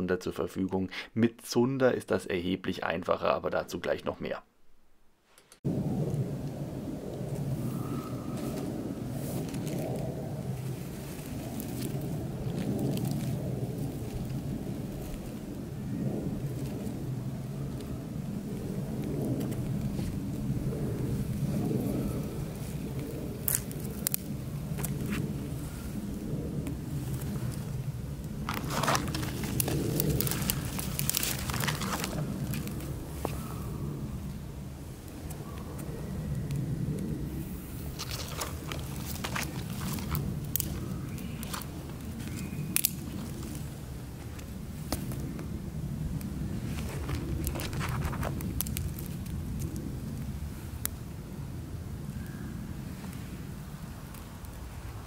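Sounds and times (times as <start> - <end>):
fire crackling and snapping: 5.2 - 55.0
steady low rumble: 5.6 - 55.0.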